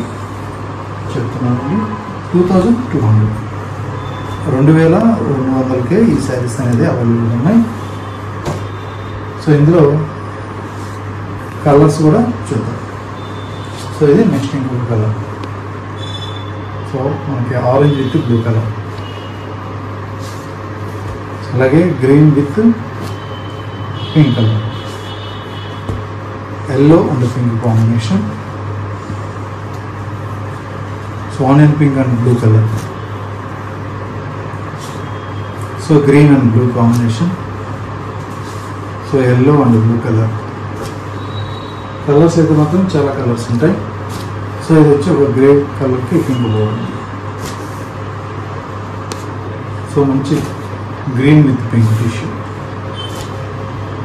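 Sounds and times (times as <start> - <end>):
room hum and hiss: 0.0 - 54.0
soft fabric rustle: 20.1 - 21.5, 38.2 - 39.0, 44.0 - 44.6
fabric rustling: 22.8 - 23.6, 43.9 - 44.6, 46.1 - 51.0
fabric rustle: 38.1 - 39.0, 43.9 - 44.6, 46.1 - 48.2.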